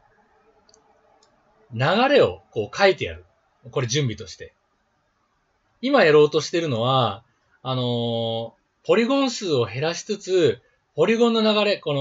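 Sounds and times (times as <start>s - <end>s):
person speaking: 1.7s - 4.5s, 5.8s - 12.0s.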